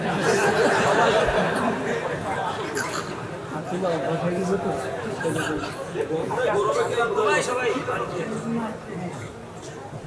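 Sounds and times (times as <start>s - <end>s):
several voices talking: 0.0s - 10.0s.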